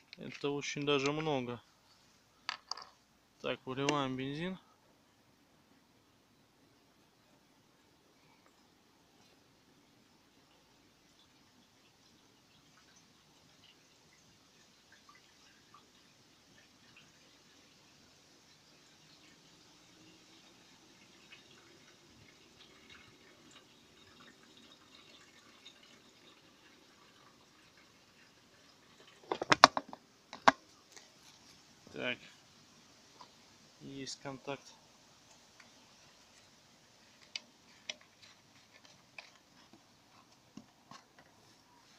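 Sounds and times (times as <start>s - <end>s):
fuel trickling into tank: 10.4s - 32.4s, 33.1s - 41.9s
loud clicks and knocks: 29.3s - 30.6s.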